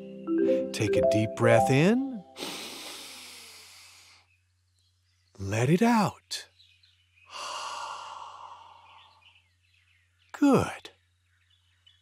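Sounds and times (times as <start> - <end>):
deep breath in: 2.4 - 4.2, 7.3 - 9.2.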